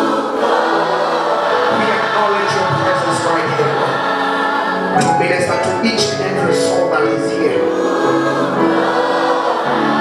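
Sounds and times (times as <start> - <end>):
congregation singing gospel song: 0.0 - 10.0.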